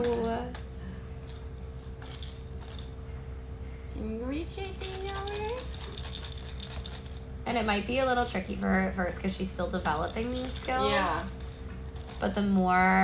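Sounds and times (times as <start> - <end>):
plastic baby rattle shaking: 4.7 - 7.2, 9.9 - 12.3.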